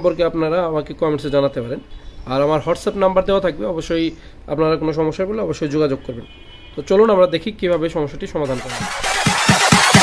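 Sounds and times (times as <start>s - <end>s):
electronic intro music with bass thumps: 8.4s - 10.0s.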